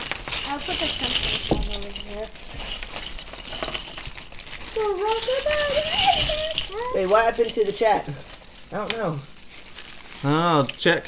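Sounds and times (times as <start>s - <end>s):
plastic bags crinkling: 0.0s - 11.0s
plastic parts clattering in bags: 0.0s - 11.0s.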